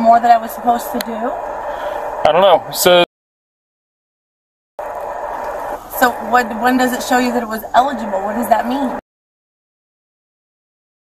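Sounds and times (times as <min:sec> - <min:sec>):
steady indistinct noise: 0:00.0 - 0:03.1, 0:04.8 - 0:09.0.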